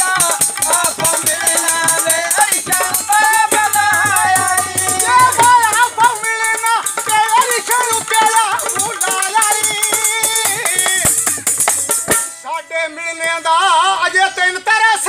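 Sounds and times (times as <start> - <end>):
fast metallic jingling: 0.1 - 10.9
man singing folk melody: 12.4 - 15.0.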